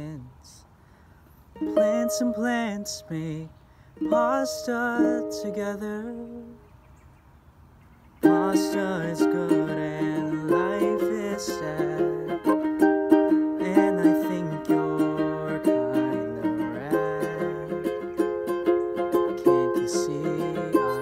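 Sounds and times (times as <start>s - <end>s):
ukulele strumming: 1.6s - 6.5s, 8.2s - 21.0s.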